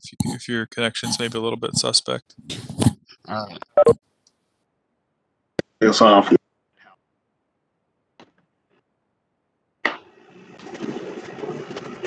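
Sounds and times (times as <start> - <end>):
microphone and room rustle: 1.1 - 4.6.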